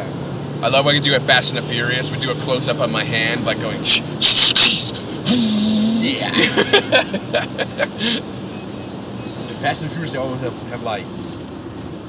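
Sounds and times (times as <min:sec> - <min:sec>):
car road noise: 0:00.0 - 0:12.0
man making hissing sound: 0:03.9 - 0:06.3
laughter: 0:06.4 - 0:08.0.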